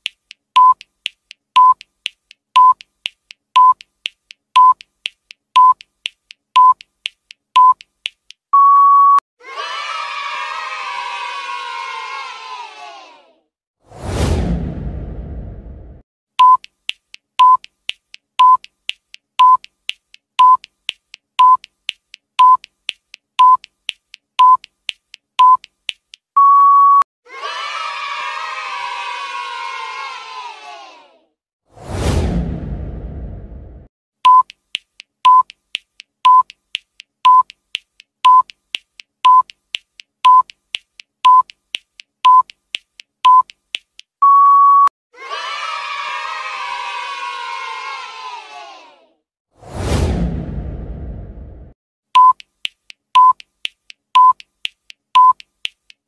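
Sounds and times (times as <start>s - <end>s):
countdown beeps and ticks: 0.0s - 9.2s, 16.4s - 27.0s, 34.2s - 44.9s, 52.2s - 55.8s
crowd cheering: 9.4s - 13.3s, 27.3s - 31.2s, 45.2s - 49.0s
whoosh: 13.9s - 16.0s, 31.7s - 33.9s, 49.6s - 51.8s
low rumble: 14.0s - 16.0s, 31.9s - 33.9s, 49.7s - 51.8s.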